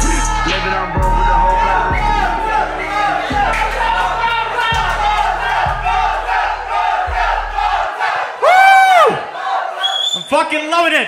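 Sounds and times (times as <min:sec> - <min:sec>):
hip-hop beat with bass kicks: 0:00.0 - 0:07.8
crowd noise: 0:00.0 - 0:11.0.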